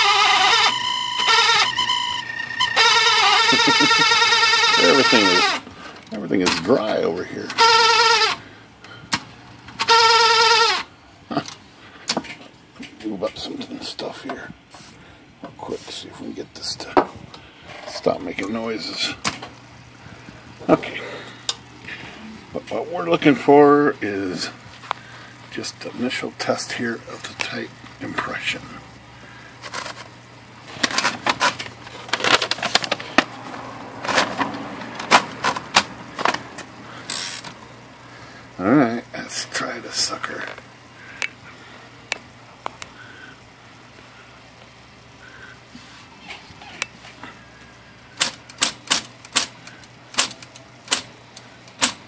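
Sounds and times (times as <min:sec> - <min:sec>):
typewriter mechanism squealing: 0:00.0 - 0:05.6, 0:07.4 - 0:08.4, 0:09.8 - 0:10.9
electric typewriter running: 0:00.0 - 0:08.4, 0:30.7 - 0:37.6, 0:48.1 - 0:52.0
clicks and rattles of paper feed: 0:29.6 - 0:30.1, 0:30.7 - 0:37.6, 0:48.2 - 0:52.0
sharp mechanical clicks: 0:48.2 - 0:52.0.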